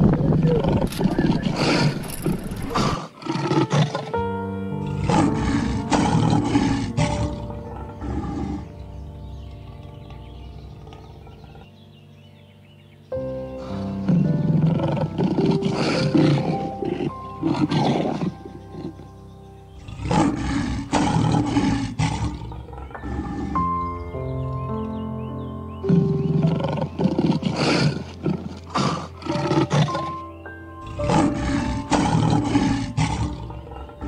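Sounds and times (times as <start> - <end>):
lion roaring: 0.0 - 4.2, 4.8 - 8.8, 13.6 - 19.0, 19.7 - 24.0, 25.9 - 30.2, 30.8 - 34.0
background music of sustained chords: 0.0 - 34.0.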